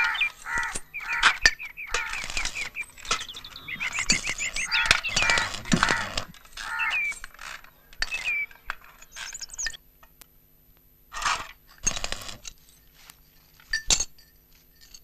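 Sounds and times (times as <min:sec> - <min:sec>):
small birds chirping: 0:00.0 - 0:09.8
metallic clinks: 0:12.5 - 0:15.0.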